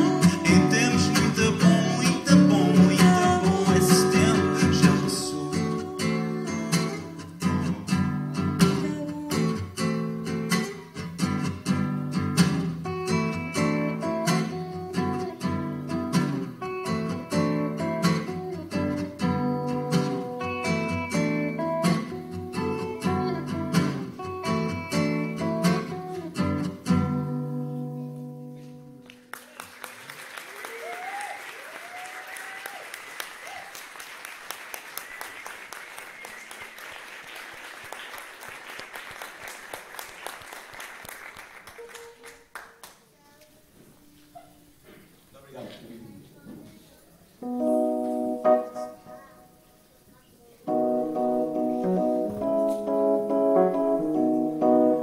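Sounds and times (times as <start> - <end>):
guitar playing: 0.0 - 29.3, 47.4 - 49.7, 50.6 - 55.0
audience applauding: 29.0 - 43.1
audience shouts: 30.6 - 33.8.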